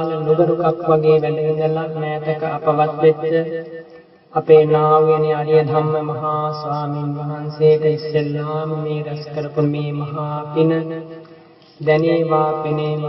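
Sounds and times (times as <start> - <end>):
man chanting: 0.0 - 3.7, 4.3 - 13.0.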